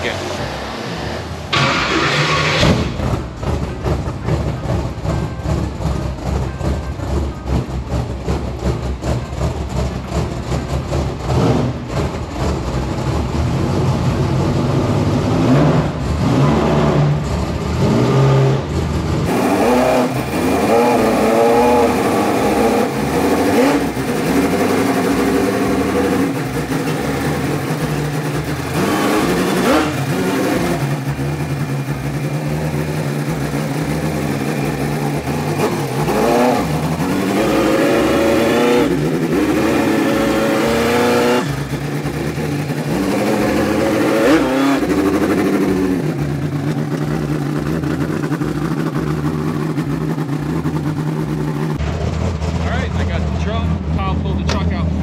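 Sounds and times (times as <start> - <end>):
truck engine idling and revving: 0.0 - 55.0.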